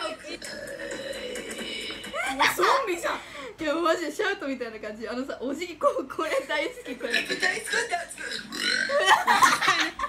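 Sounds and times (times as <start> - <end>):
person burping: 0.1 - 2.5, 7.1 - 9.2.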